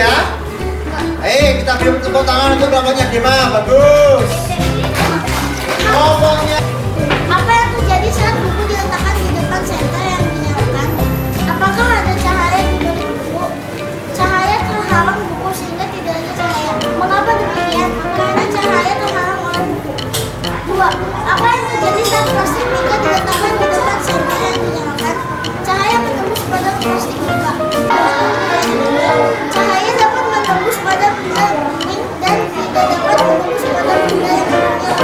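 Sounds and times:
background music: 0.0s - 35.0s
children's voices: 3.9s - 35.0s
girl reading aloud: 7.3s - 19.9s, 20.6s - 35.0s.

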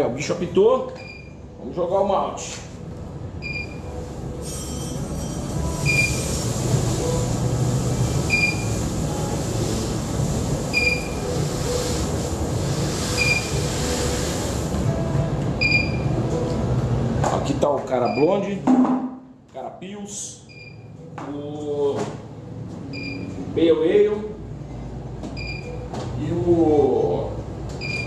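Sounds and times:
alarm beeps: 3.4s - 3.9s, 5.8s - 6.3s, 8.3s - 8.8s, 10.7s - 11.3s, 13.2s - 13.6s, 15.6s - 16.2s, 18.0s - 18.4s, 20.5s - 20.9s, 22.9s - 23.4s, 25.4s - 25.8s, 27.8s - 28.0s.

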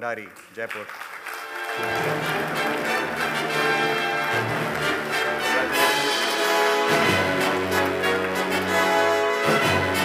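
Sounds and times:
orchestral music with brass: 1.4s - 10.0s.

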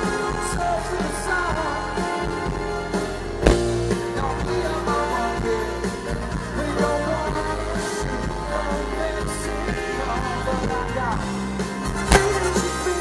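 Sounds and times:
live band playing: 0.0s - 13.0s
sharp hit: 3.4s - 4.9s.

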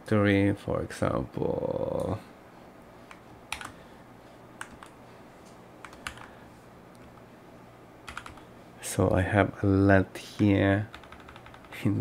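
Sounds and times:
keyboard keys clicking: 3.1s - 3.8s, 4.6s - 5.0s, 5.8s - 6.3s, 8.1s - 8.4s, 10.4s - 11.8s.

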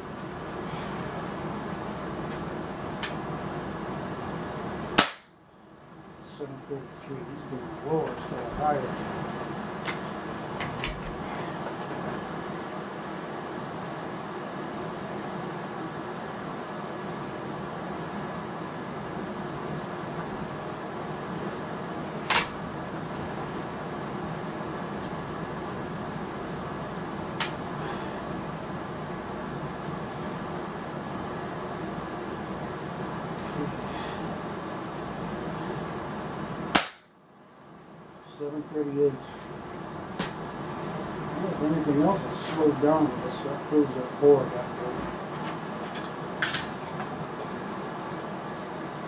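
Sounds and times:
steady mechanical hum: 0.0s - 49.0s.

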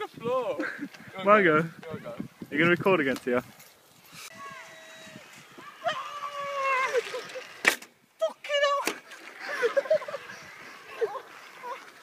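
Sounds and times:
wavering vocal cry: 4.3s - 7.6s.

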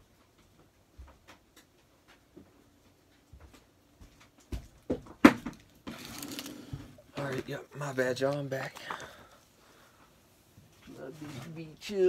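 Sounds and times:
sharp knocks and thumps: 4.5s - 5.6s.

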